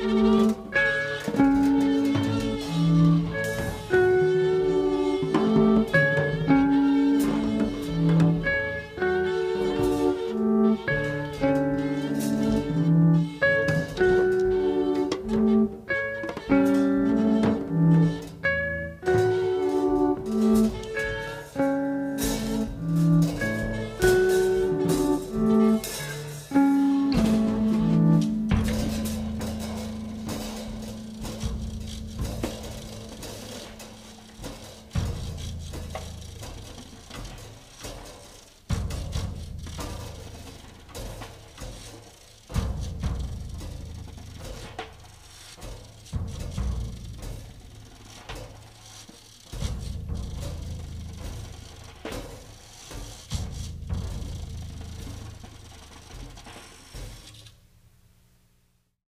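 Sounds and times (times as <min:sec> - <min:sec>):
electric guitar: 0:00.0 - 0:35.2
held low note: 0:00.0 - 0:36.6
bass: 0:00.0 - 0:37.8, 0:38.5 - 0:56.7
irregular drum and percussion hits: 0:00.0 - 0:57.8.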